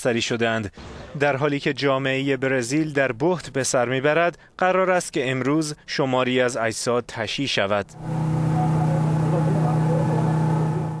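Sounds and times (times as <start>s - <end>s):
engine running: 7.9s - 11.0s.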